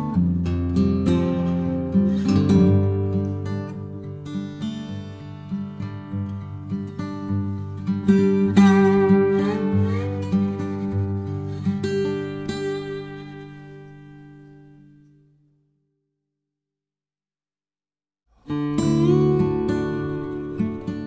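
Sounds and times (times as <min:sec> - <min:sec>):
acoustic guitar playing: 0:00.0 - 0:15.7, 0:18.3 - 0:21.0.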